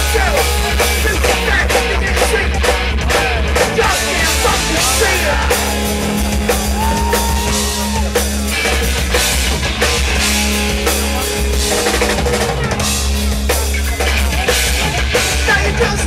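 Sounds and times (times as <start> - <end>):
bass guitar: 0.0 - 16.0
distorted electric guitars: 0.0 - 16.0
driving drum kit: 0.0 - 16.0.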